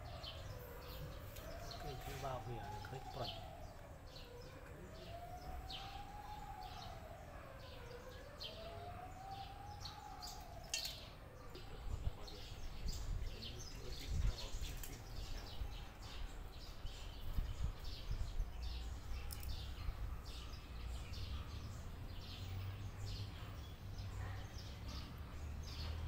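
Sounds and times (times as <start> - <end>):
siren wailing: 0.0 - 14.6.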